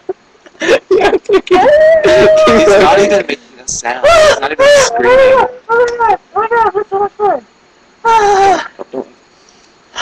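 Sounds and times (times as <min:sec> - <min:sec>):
person squealing laugh: 0:00.6 - 0:03.2.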